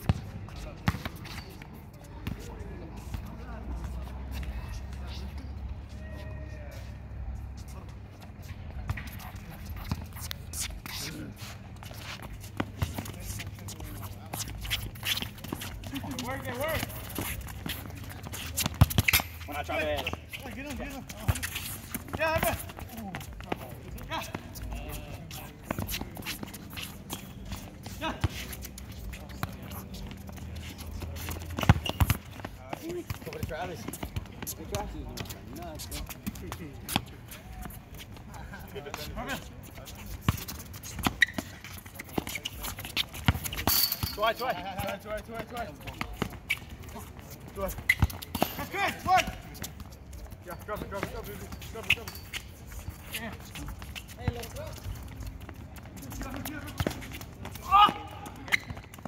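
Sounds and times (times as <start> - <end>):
players shouting and chatting: 0.0 - 59.0
shoes scuffing on hard court: 7.6 - 59.0.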